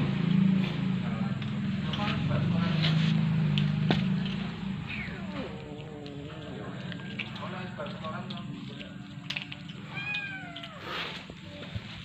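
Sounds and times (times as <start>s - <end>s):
steady low hum: 0.0s - 12.0s
kitten meowing: 4.9s - 6.4s, 9.7s - 11.3s.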